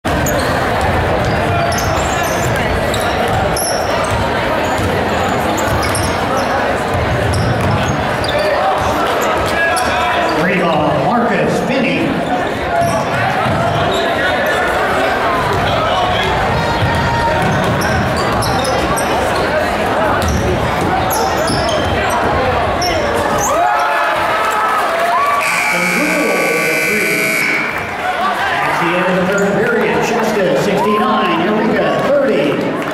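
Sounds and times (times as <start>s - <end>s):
spectators' voices and shouts: 0.1s - 32.9s
scoreboard buzzer high tone: 25.4s - 28.0s.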